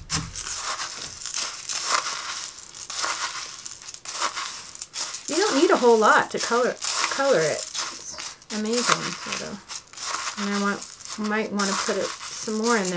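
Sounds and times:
glass chips crunching in a cup: 0.1s - 12.9s.

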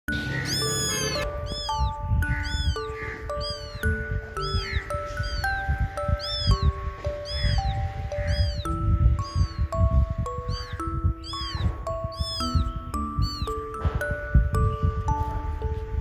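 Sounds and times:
slow background music: 0.1s - 16.0s
kitten meowing: 0.5s - 9.8s, 10.4s - 13.6s.

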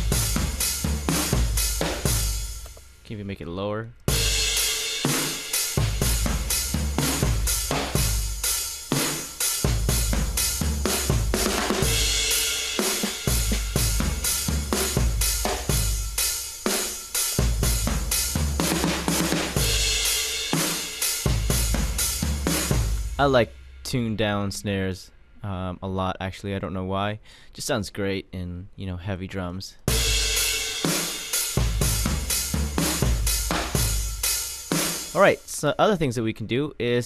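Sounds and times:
rock drum beat: 0.0s - 3.1s, 4.1s - 24.4s, 29.9s - 35.5s.

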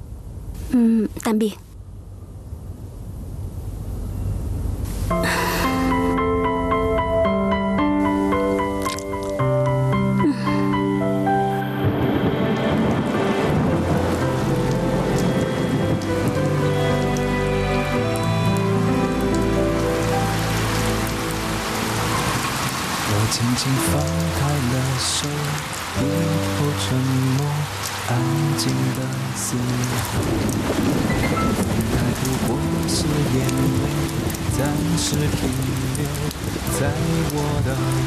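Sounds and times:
steady rain falling: 4.7s - 38.0s
soft music with slow held notes: 5.0s - 38.0s.

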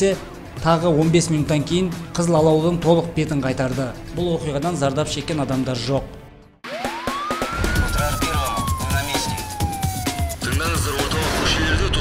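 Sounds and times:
theme music with a beat: 0.0s - 11.8s
siren sound effect: 6.6s - 11.3s.

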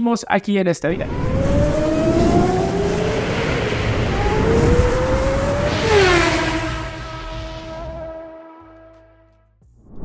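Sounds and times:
race car engine revving: 0.9s - 8.7s
car passing whoosh: 0.9s - 8.9s.

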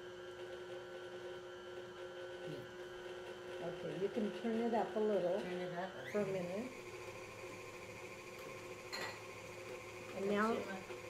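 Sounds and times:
electric stand mixer running: 0.0s - 11.0s.

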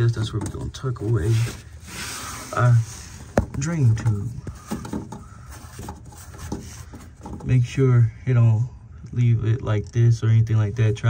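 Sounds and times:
faint rubbing of tube: 0.7s - 7.5s.

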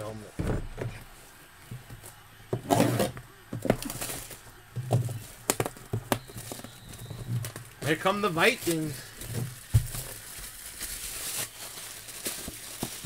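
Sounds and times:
low background hum: 0.0s - 13.0s
packaging rustling: 1.9s - 13.0s.

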